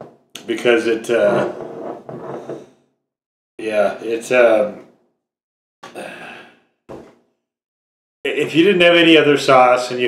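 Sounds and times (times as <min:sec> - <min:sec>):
man sighing: 0:05.9 - 0:06.6.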